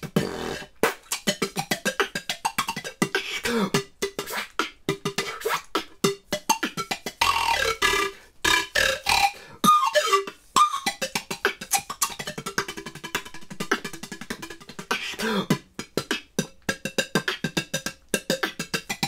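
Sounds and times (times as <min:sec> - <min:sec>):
pan flute notes: 0:00.0 - 0:16.3
beatboxing mouth beats: 0:00.0 - 0:19.0.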